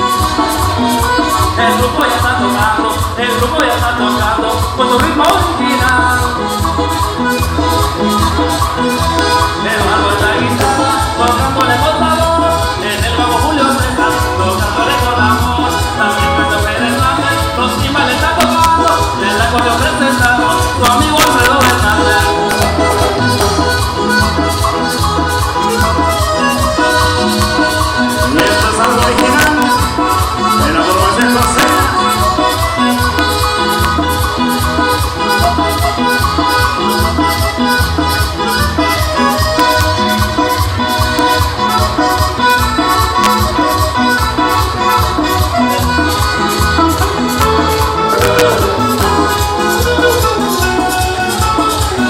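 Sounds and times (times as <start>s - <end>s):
band playing latin dance music: 0.0s - 52.0s
lead melody: 0.0s - 52.0s
steady bass line: 0.0s - 52.0s
steady percussion beat: 0.0s - 52.0s.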